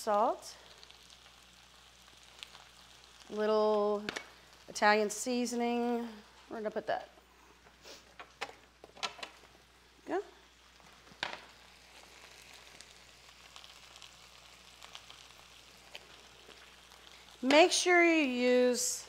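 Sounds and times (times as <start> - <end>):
vegetables sizzling in a frying pan: 0.0 - 19.0.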